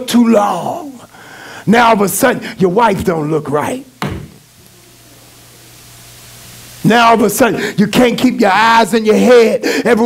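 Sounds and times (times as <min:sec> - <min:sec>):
faint steady hum: 0:00.0 - 0:10.0
hand knocking on wooden lectern: 0:04.0 - 0:04.4.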